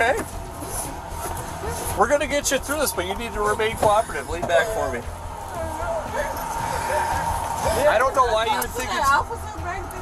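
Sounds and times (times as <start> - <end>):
background music: 0.0 - 10.0
steady low hum: 0.0 - 10.0.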